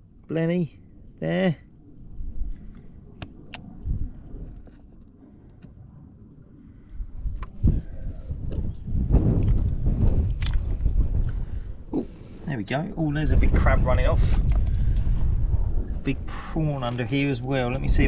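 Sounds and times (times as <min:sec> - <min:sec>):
wind rumble on microphone: 0:01.9 - 0:18.0
microphone handling noise: 0:07.3 - 0:12.1, 0:13.4 - 0:16.0.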